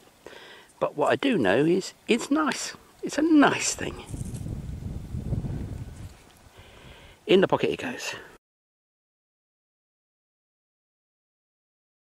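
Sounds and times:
wind buffeting microphone: 3.5 - 7.2.

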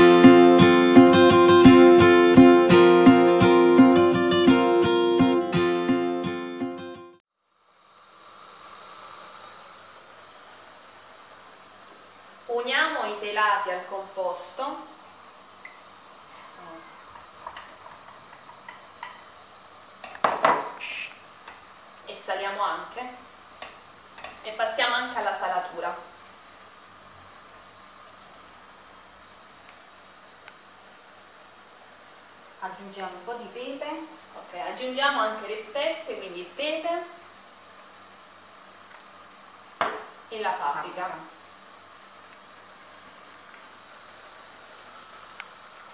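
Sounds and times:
object knocking on counter: 20.1 - 20.8, 39.8 - 40.1.

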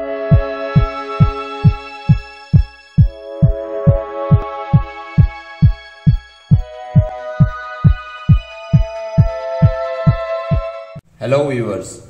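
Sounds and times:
sustained synth chords: 0.0 - 11.0
deep kick drum beating: 0.3 - 10.7.

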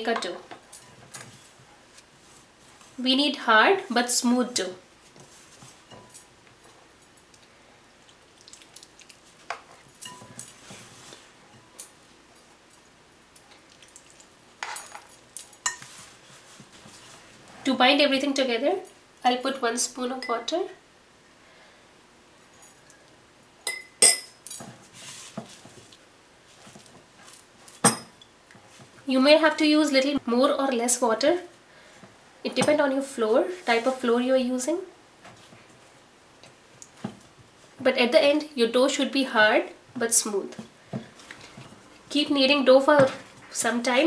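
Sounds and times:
spoon clinking glass bowl: 10.0 - 10.5, 23.6 - 24.4.

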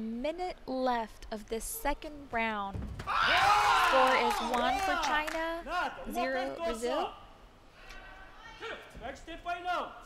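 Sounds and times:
commentator talking: 4.0 - 7.1.

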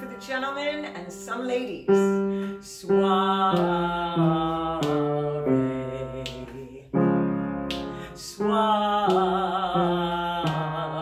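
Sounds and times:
piano chord: 0.0 - 11.0.

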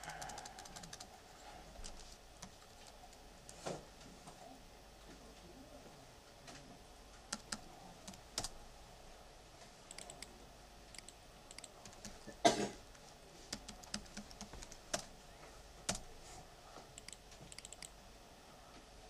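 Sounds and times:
keyboard keystrokes: 0.0 - 1.1, 7.3 - 8.6, 9.9 - 10.3, 13.5 - 15.1, 17.0 - 17.9
mouse clicks: 7.3 - 8.6, 9.9 - 10.3, 10.9 - 12.2, 13.5 - 15.1, 17.0 - 18.0.

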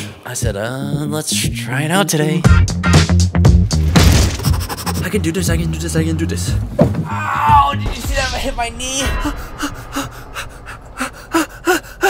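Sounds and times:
man gasping and panting: 9.2 - 12.0.

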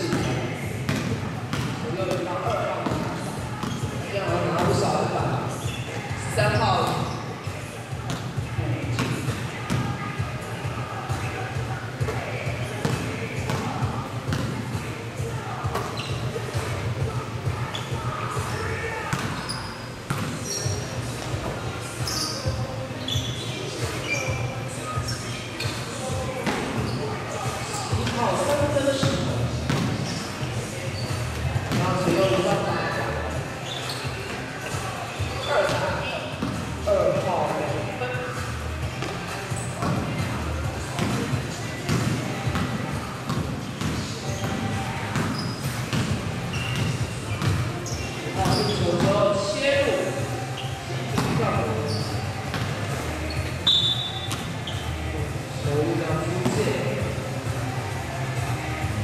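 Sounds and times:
basketball dribbling on court: 0.1 - 4.9, 8.0 - 10.0, 12.0 - 14.9, 19.1 - 24.2, 26.3 - 30.2, 41.0 - 49.2, 51.1 - 54.8.

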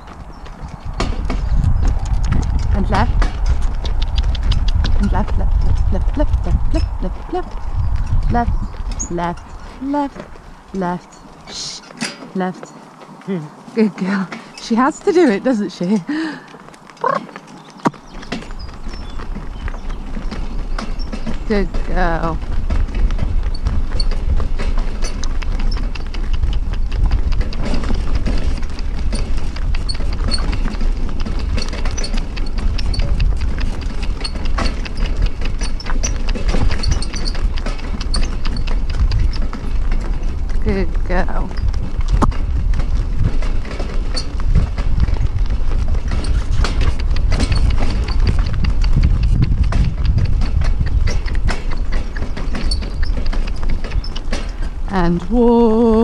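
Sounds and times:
carriage rattling: 0.0 - 55.3
heavy low rumble: 0.0 - 56.0
hooves clip-clopping on gravel: 0.0 - 56.0.

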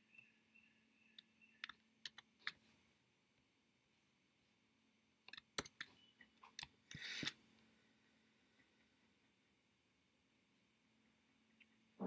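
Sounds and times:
computer mouse clicks: 1.2 - 2.8, 5.2 - 7.4.

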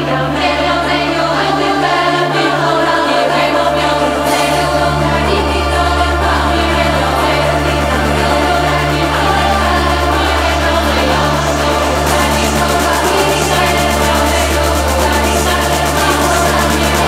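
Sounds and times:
deep bass line: 0.0 - 17.0
melodic techno music: 0.0 - 17.0.

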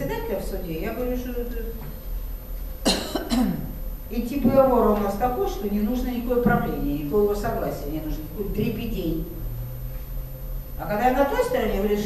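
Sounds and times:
person coughing: 2.8 - 3.8.

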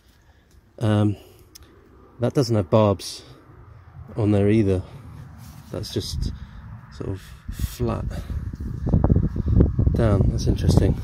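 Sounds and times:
wind buffeting microphone: 3.4 - 11.0.

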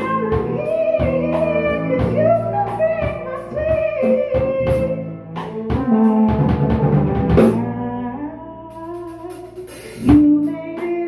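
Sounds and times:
electric bass: 0.0 - 11.0
piano: 0.0 - 11.0.

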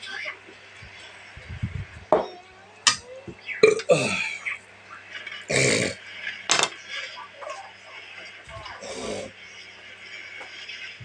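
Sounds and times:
man making throat noises: 3.6 - 4.3, 5.5 - 6.0
man burping: 3.6 - 4.4, 5.5 - 6.0.

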